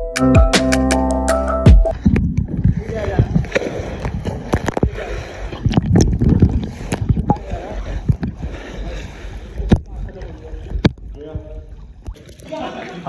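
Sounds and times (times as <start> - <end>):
bubbles: 1.9 - 8.4
muffled underwater churning: 1.9 - 13.0.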